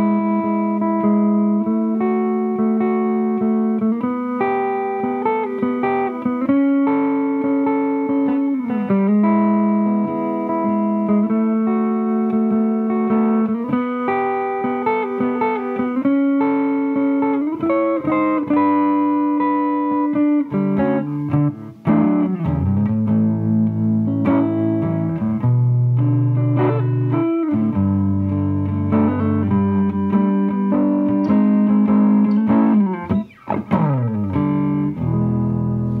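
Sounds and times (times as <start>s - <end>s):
electric guitar sustained notes: 0.0s - 36.0s.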